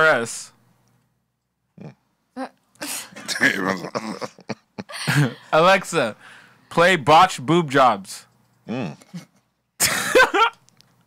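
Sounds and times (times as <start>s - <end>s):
people coughing: 3.0s - 5.4s
people laughing: 3.2s - 5.5s.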